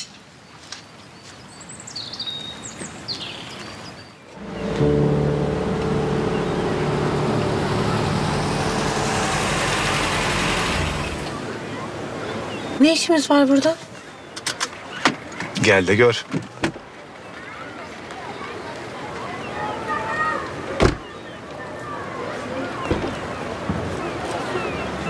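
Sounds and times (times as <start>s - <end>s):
car engine and tyre noise: 4.4s - 12.8s.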